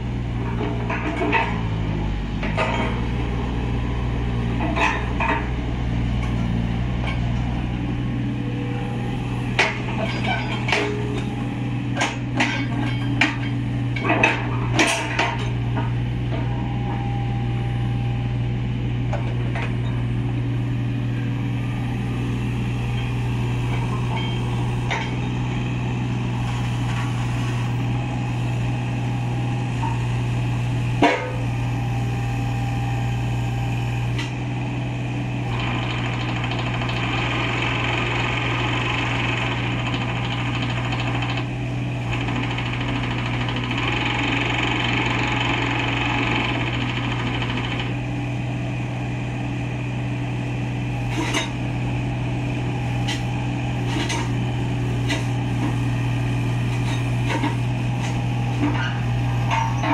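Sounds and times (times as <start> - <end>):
diesel engine running: 0.0 - 59.9.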